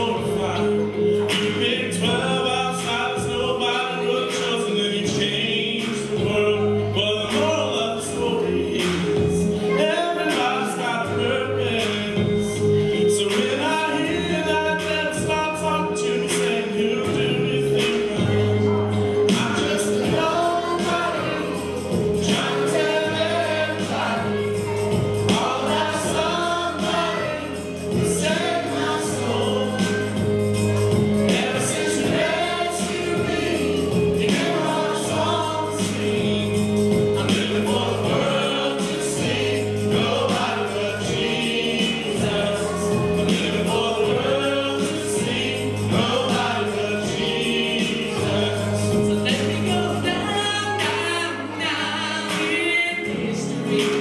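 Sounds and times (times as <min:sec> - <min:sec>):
group singing a worship song: 0:00.0 - 0:54.0
instrumental accompaniment: 0:00.0 - 0:54.0.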